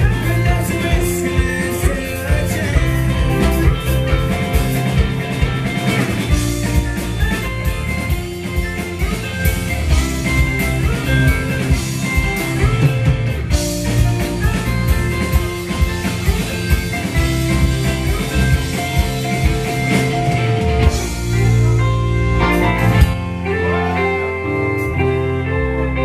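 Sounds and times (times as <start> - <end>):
bass guitar: 0.0 - 26.0
drum kit: 0.0 - 26.0
electric guitars: 0.0 - 26.0.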